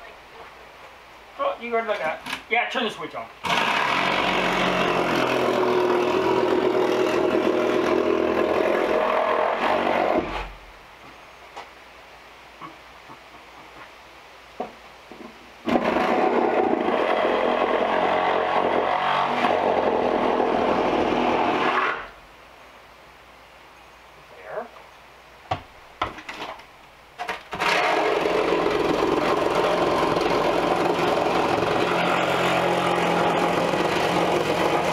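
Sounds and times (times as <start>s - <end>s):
electric power saw cutting wood: 3.4s - 10.6s, 15.7s - 22.1s, 27.5s - 34.9s.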